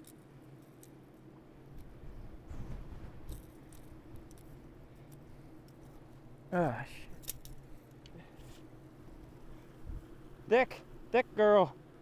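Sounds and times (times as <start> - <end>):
steady low hum: 0.0 - 12.0
low rumbling handling noise: 1.5 - 6.4
fishing hooks clicking and jingling: 7.1 - 8.0.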